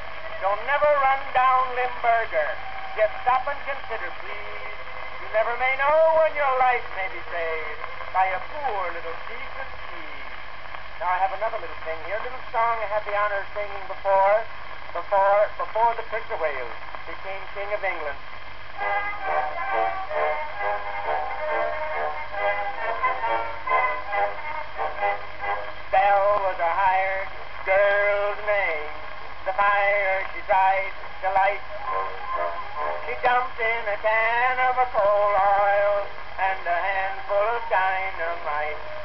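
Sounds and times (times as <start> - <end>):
faint steady hum: 0.0 - 39.0
old instrumental recording: 0.0 - 39.0
man singing a comic song: 0.3 - 10.2, 11.0 - 18.2, 18.8 - 39.0.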